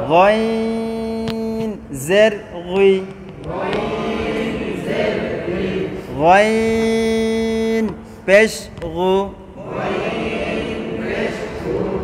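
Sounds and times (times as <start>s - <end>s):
group chanting in unison: 3.4s - 6.4s, 9.5s - 12.0s.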